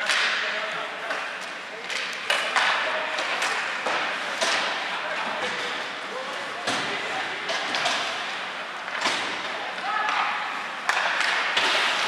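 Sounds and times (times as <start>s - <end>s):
hockey sticks clacking on puck: 0.0s - 5.8s, 6.6s - 12.0s.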